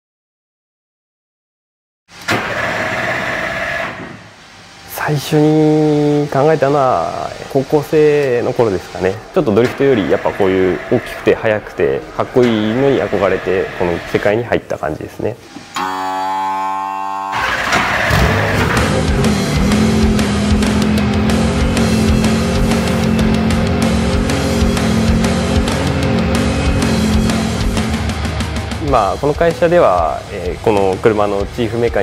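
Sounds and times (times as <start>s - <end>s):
held musical tone: 5.0s - 32.0s
race car engine revving: 6.0s - 14.4s, 17.3s - 32.0s.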